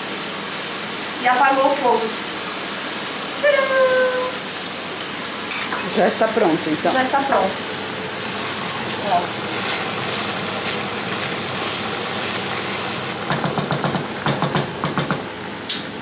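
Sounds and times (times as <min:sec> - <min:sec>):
meat sizzling in a frying pan: 0:00.0 - 0:15.6.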